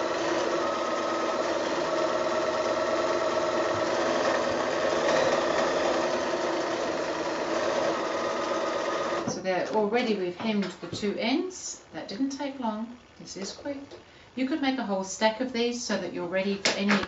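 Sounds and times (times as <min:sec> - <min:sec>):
electric sewing machine running: 0:00.0 - 0:09.4.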